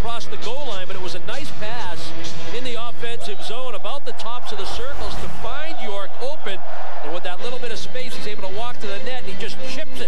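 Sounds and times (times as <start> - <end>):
hockey commentators talking: 0.0 - 10.0.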